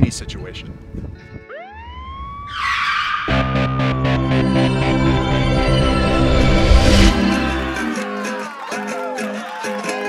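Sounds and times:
siren wailing: 1.5 - 8.0.

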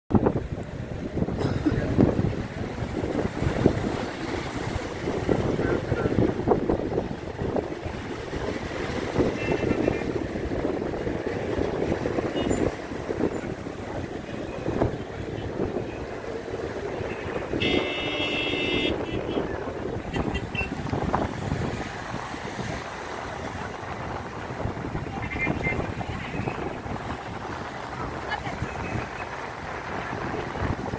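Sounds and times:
wind buffeting microphone: 0.1 - 30.9
waves washing onto rocks: 0.2 - 30.9.

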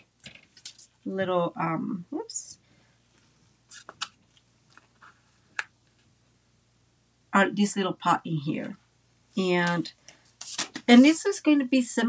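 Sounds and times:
paper rustle: 9.6 - 11.2.

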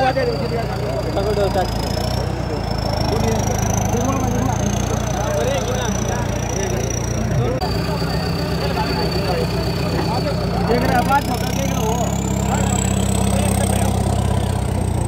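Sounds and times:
crowd of men chattering: 0.0 - 15.0
tractor diesel engine running: 0.0 - 15.0.

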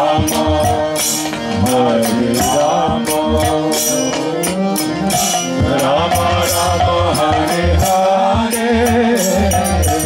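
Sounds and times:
harmonium holding chords: 0.0 - 10.0
two-headed drum beat: 0.0 - 10.0.

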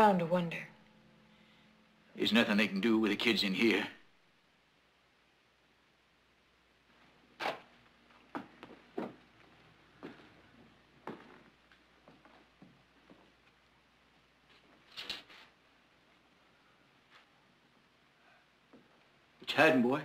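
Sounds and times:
boot footsteps on wooden floor: 8.3 - 10.3, 11.0 - 13.3.

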